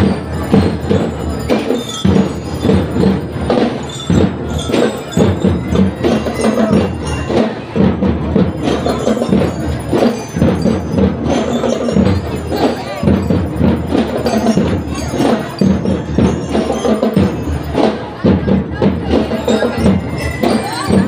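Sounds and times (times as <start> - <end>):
bell lyres melody: 0.0 - 21.0
marching drums beat: 0.0 - 21.0.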